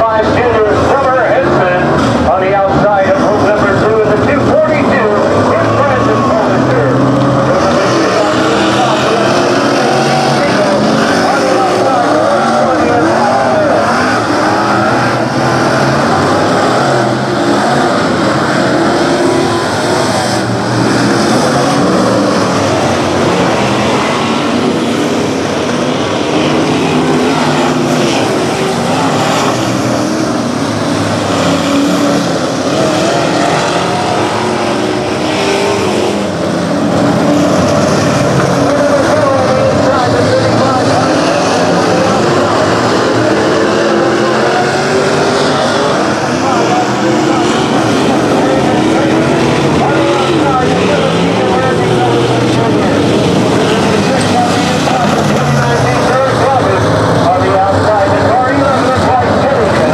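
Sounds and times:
race car engines roaring: 0:00.0 - 0:59.9.

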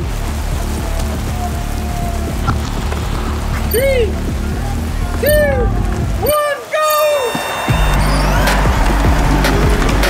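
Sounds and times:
background music: 0:00.0 - 0:10.0
rain on wet pavement: 0:00.0 - 0:10.0.

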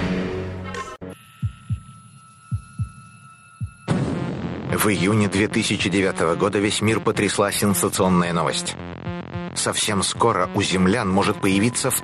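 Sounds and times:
faint steady high tone: 0:01.2 - 0:03.9
heartbeat thumps: 0:01.4 - 0:03.0, 0:03.6 - 0:04.7, 0:08.8 - 0:09.6.

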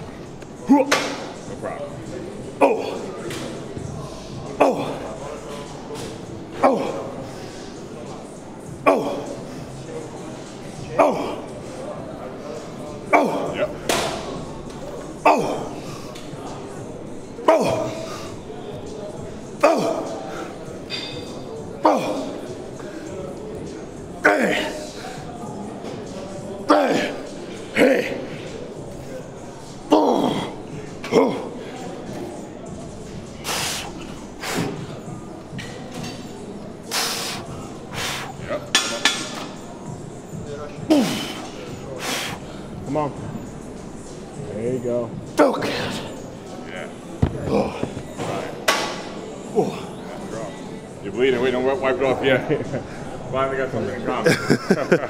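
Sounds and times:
man grunting: 0:15.2 - 0:15.7.

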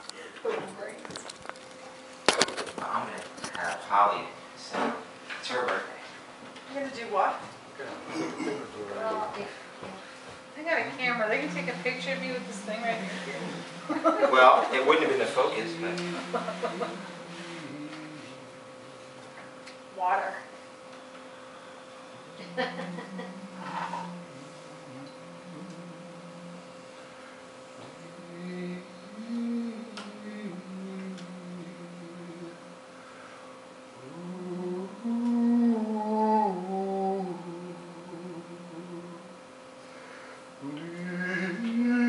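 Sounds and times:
faint steady hum: 0:00.0 - 0:42.0
man overtone singing: 0:11.5 - 0:18.6, 0:22.3 - 0:26.8, 0:27.9 - 0:32.7, 0:34.0 - 0:39.4, 0:40.6 - 0:42.0
voice trailing off: 0:15.1 - 0:18.4.

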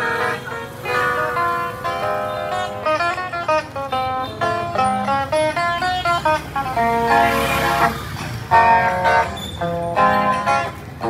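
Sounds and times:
electric guitar melody: 0:00.0 - 0:11.0.

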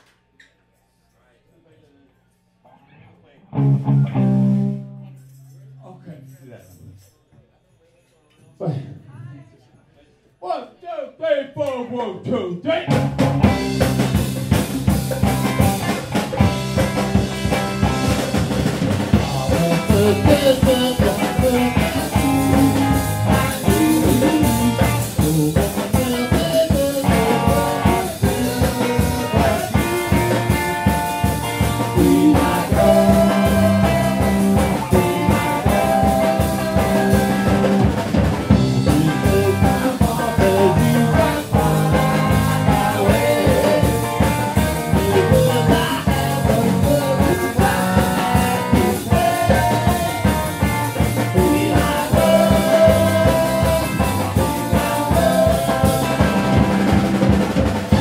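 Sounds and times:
electric guitar: 0:03.5 - 0:05.4, 0:12.9 - 0:58.0
bass guitar: 0:03.5 - 0:05.9, 0:12.9 - 0:58.0
drum kit: 0:12.9 - 0:58.0.

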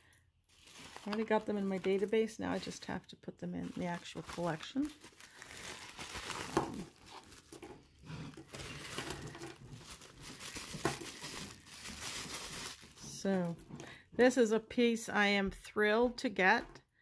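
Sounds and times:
bubble wrap bag crinkling: 0:00.0 - 0:13.6.

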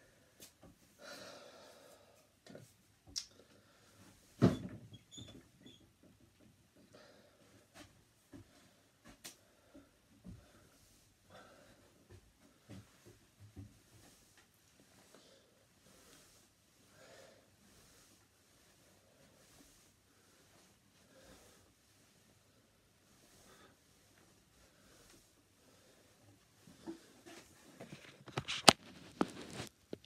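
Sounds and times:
clothes rustling: 0:10.8 - 0:30.0.

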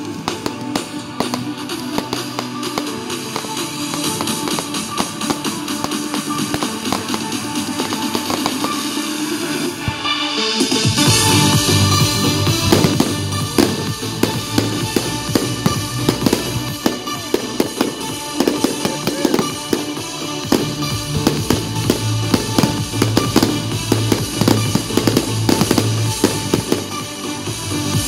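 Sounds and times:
fireworks bangs and crackles: 0:00.0 - 0:28.0
music playing: 0:00.0 - 0:28.0.

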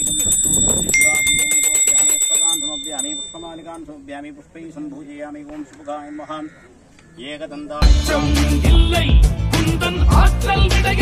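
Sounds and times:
small brass hand bell ringing: 0:00.0 - 0:03.7.

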